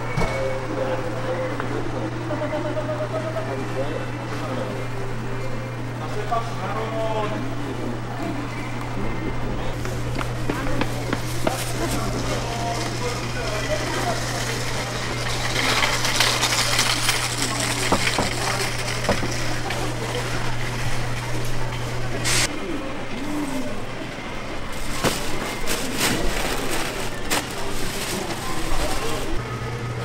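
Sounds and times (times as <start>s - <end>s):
background chatter: 0.0s - 30.0s.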